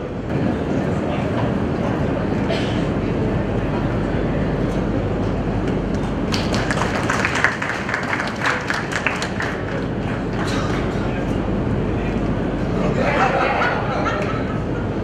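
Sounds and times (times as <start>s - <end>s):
murmur of voices: 0.0s - 15.0s
small group applauding: 5.9s - 11.1s.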